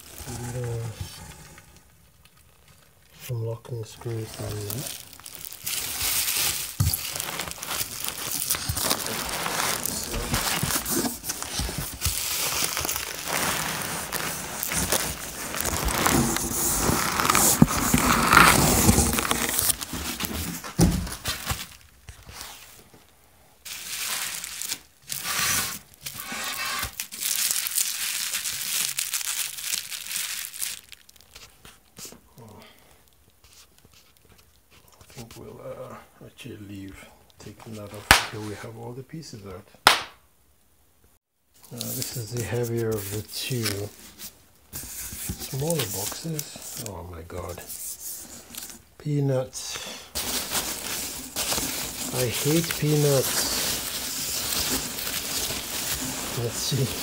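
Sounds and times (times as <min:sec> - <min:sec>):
bubble wrap crinkling: 0:00.0 - 0:22.9, 0:23.6 - 0:35.3, 0:41.6 - 0:57.0.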